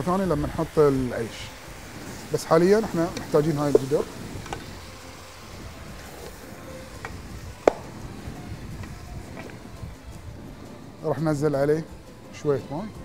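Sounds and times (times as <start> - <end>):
meat sizzling in a pot: 0.0 - 11.5.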